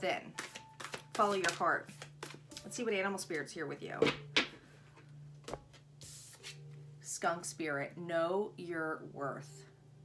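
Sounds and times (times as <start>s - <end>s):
card tapping: 0.4s - 2.7s.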